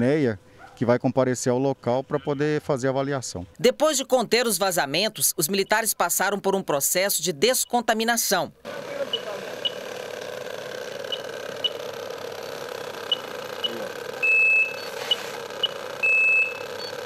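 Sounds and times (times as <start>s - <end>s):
machinery engine hum: 8.6s - 17.0s
longer electronic beep: 9.1s - 9.8s, 13.1s - 17.0s
short high electronic beeps: 13.1s - 17.0s.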